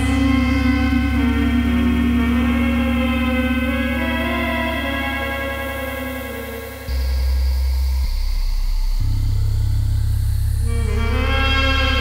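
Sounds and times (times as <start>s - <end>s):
low synthesizer drone: 0.0s - 12.0s.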